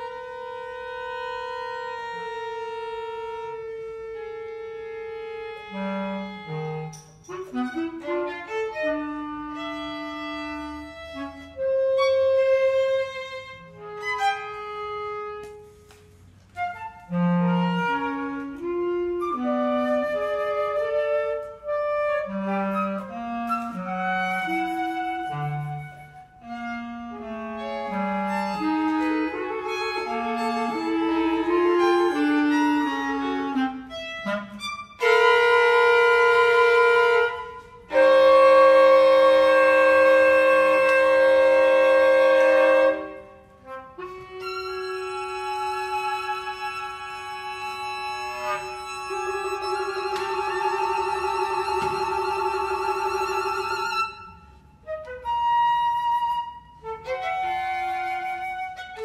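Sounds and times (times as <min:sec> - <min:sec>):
violin: 0:00.0 - 0:55.2
bass clarinet: 0:00.0 - 0:59.0
flute: 0:00.0 - 0:59.0.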